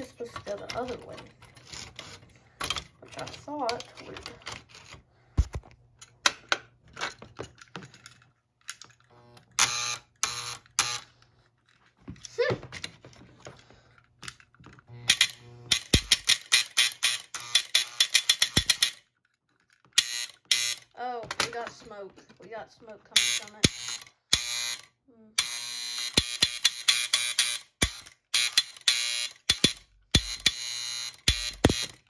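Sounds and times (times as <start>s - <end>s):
electrical mechanism buzzing: 9.0s - 11.1s, 14.8s - 18.9s, 20.0s - 21.0s, 23.2s - 32.0s.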